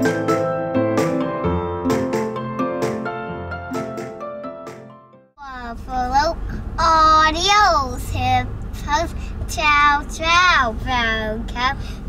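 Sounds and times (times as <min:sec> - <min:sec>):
piano music: 0:00.0 - 0:05.3
girl singing a chant: 0:05.4 - 0:11.9
low car cabin rumble: 0:05.4 - 0:12.0.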